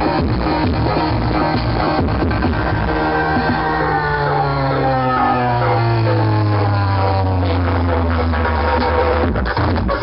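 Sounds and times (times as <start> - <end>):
electronic dance music: 0.0 - 10.0
heavy bass: 0.0 - 10.0
droning synth tone sliding downward: 0.9 - 8.9.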